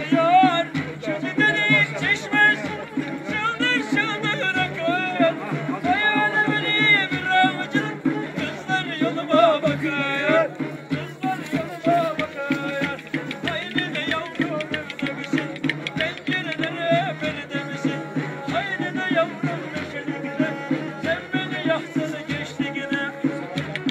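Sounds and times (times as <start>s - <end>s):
bass drum steady beat: 0.0s - 23.9s
bowed fiddle dance melody: 0.0s - 23.9s.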